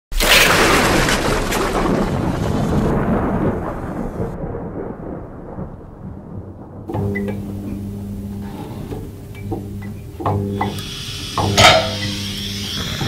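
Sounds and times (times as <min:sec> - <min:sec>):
crackling thunder-like noise: 0:00.2 - 0:13.0.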